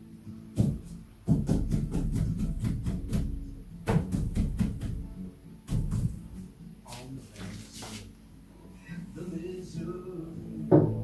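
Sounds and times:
guitars knocking against wooden cabinet: 0.6 - 6.4, 10.7 - 11.0.

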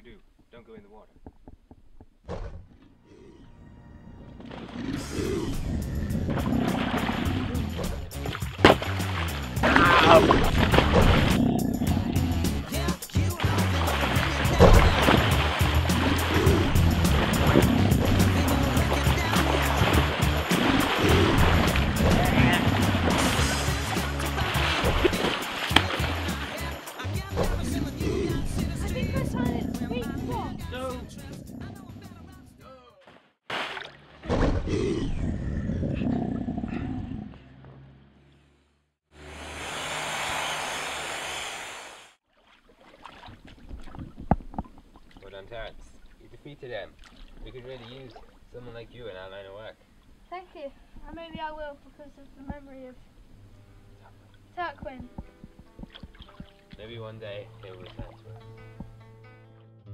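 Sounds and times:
water splashing in pool: 4.4 - 11.4, 12.6 - 30.4, 33.4 - 34.7, 40.0 - 48.8, 54.2 - 58.6
background music with beat: 12.3 - 20.6
sharp slaps: 22.7 - 26.6.

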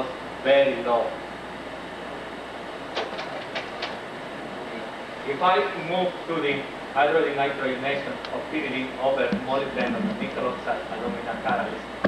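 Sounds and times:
room and projector hiss: 0.0 - 12.0.

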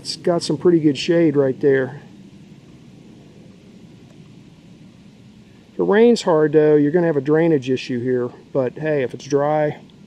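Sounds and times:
low rumble and hiss: 0.0 - 10.0.

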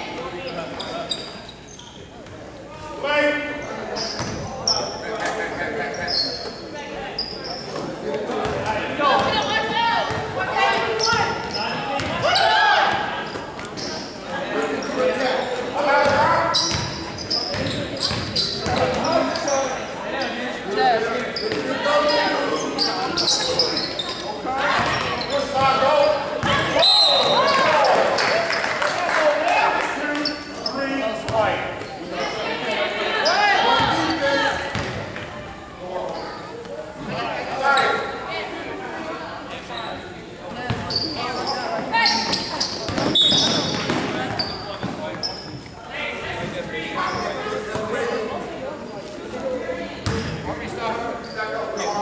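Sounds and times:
echoing voices and shouts: 2.4 - 52.0.

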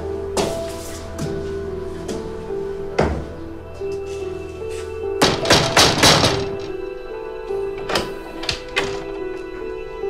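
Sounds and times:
background music with held notes: 0.0 - 10.0
knocks on wooden door: 5.2 - 6.7
metallic door bolt click: 7.8 - 9.2.

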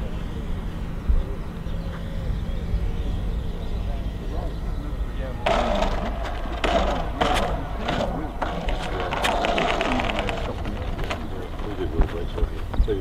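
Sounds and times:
wind rumble on microphone: 0.0 - 13.0
indistinct voices: 3.2 - 13.0.

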